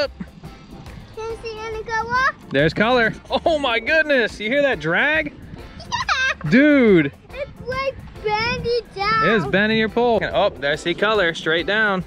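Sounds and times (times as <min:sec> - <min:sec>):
child's drawn-out voice: 0:01.2 - 0:02.4, 0:07.3 - 0:09.5.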